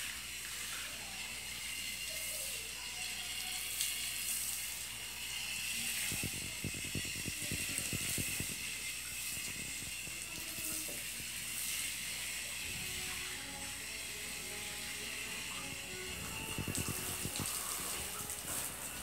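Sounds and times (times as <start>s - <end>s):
garden hose spraying water: 0.0s - 19.0s
low fluttering thumps: 6.0s - 10.3s, 16.1s - 17.5s.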